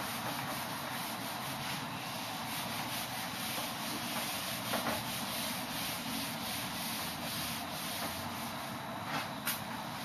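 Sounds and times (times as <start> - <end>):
eraser scrubbing whiteboard: 0.0 - 8.8.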